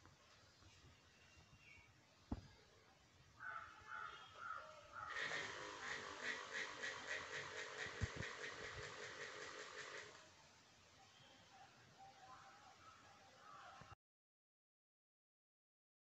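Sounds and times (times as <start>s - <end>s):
small electric motors with propellers: 5.1s - 10.2s.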